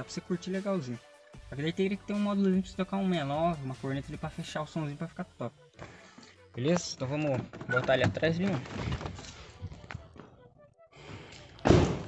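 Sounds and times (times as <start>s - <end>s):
car door slamming shut: 11.6s - 12.0s.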